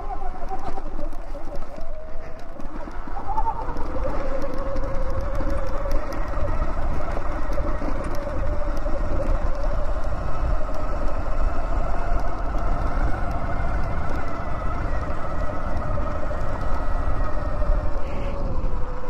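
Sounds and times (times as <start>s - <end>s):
tyres on dirt: 0.0s - 19.0s
wind rumble on microphone: 0.0s - 19.0s.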